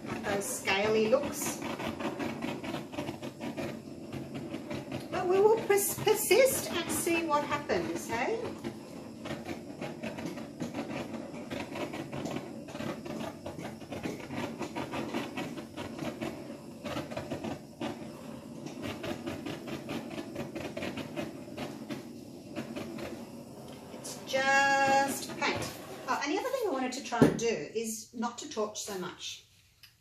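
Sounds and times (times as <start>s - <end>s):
butane torch flame hissing: 0.0s - 29.4s.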